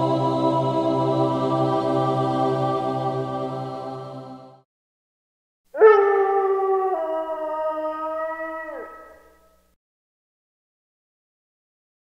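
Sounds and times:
wolf howling: 5.8 - 9.5.

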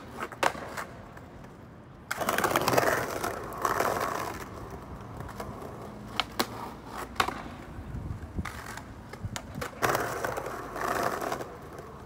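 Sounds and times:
skateboard wheels rolling on stone: 0.0 - 12.0.

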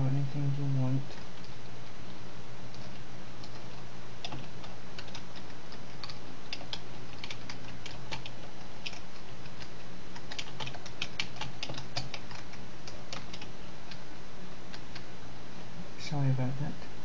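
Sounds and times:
steady low hum: 0.0 - 17.0
keyboard typing clicks: 2.7 - 14.0.

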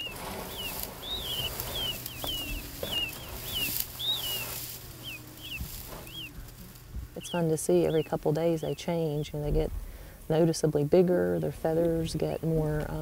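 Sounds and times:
chicks peeping: 0.0 - 9.7.

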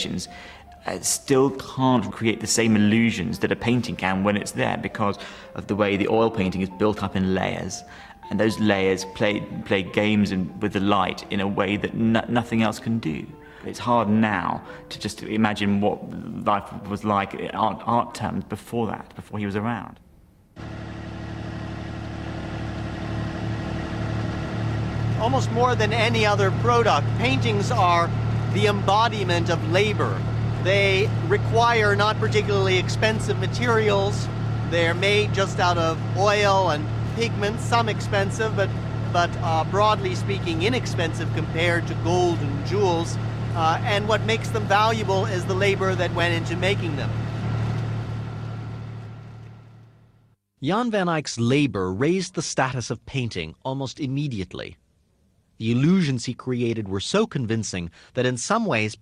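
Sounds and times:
motorboat engine running: 20.6 - 50.3.

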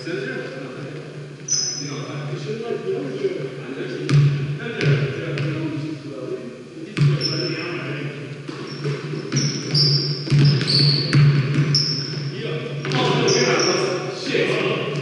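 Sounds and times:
sneaker squeaks: 1.4 - 2.0, 7.1 - 7.7, 8.5 - 14.0
basketball bouncing on wooden floor: 8.5 - 13.3.

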